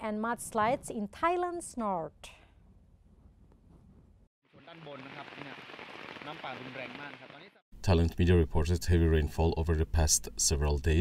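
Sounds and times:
floodwater rushing: 4.6s - 7.4s.

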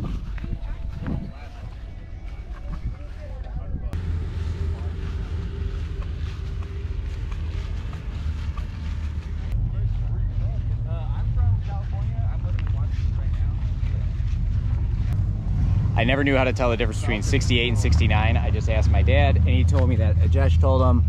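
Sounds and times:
wind buffeting microphone: 0.0s - 20.2s
distant people talking: 0.4s - 15.3s.

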